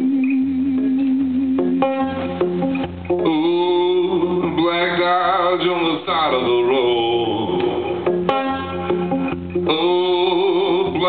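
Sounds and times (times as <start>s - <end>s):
guitar playing: 0.0s - 11.0s
man singing: 3.2s - 8.1s, 9.6s - 11.0s.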